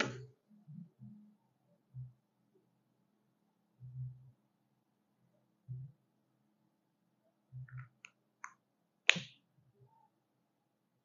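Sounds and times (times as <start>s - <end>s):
plastic marker clicks: 7.8s - 9.4s
marker cap snapping: 8.4s - 9.3s.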